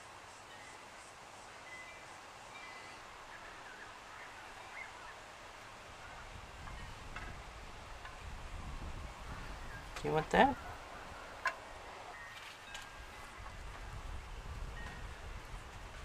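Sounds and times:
distant birds chirping: 0:00.0 - 0:15.8.

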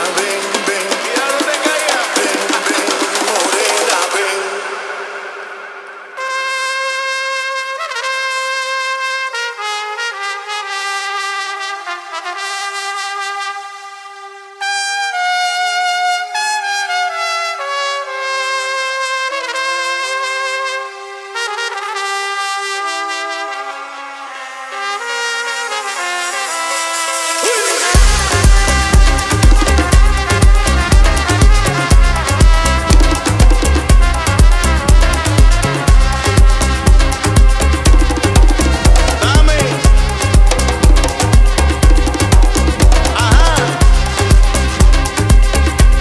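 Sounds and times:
solo trumpet slow melody: 0:04.4 - 0:46.0.

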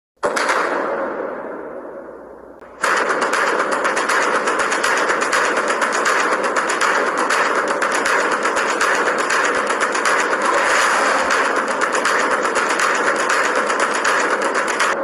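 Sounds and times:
rapid sharp cracks: 0:00.2 - 0:01.3, 0:02.6 - 0:15.0.

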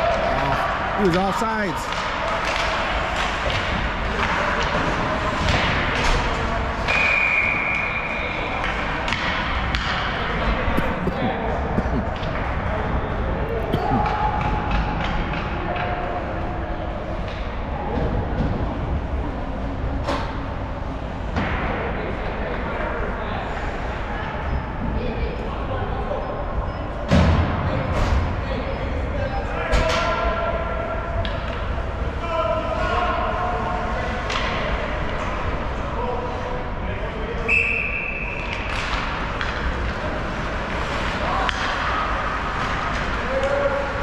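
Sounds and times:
hockey sticks and puck knocking: 0:01.0 - 0:07.0, 0:08.6 - 0:12.6, 0:13.8 - 0:16.0, 0:41.0 - 0:43.8
hall noise: 0:06.9 - 0:15.1
voices calling out: 0:10.1 - 0:14.8.

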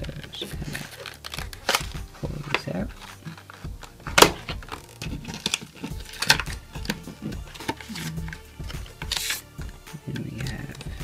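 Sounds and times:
background music: 0:00.0 - 0:11.0
packaging scraping and rustling: 0:00.0 - 0:11.0.

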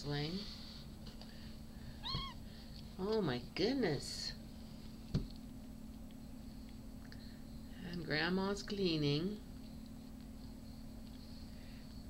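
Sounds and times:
kitten mewing: 0:02.0 - 0:02.4.

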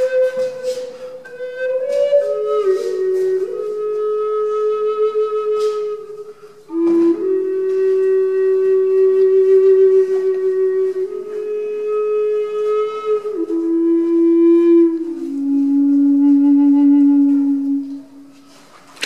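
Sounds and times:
wooden flute melody: 0:00.0 - 0:19.0.

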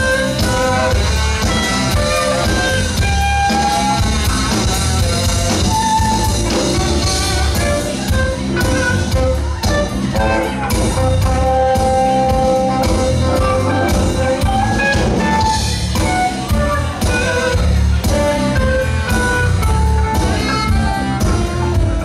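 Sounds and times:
bass: 0:00.0 - 0:22.0
drum kit beat: 0:00.0 - 0:22.0
electric guitar: 0:00.0 - 0:22.0
held melody notes: 0:00.0 - 0:22.0.

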